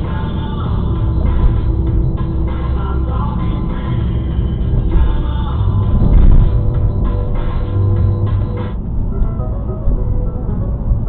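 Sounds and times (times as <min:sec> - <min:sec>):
music on car radio: 0:00.0 - 0:11.0
road and engine rumble: 0:00.0 - 0:11.0.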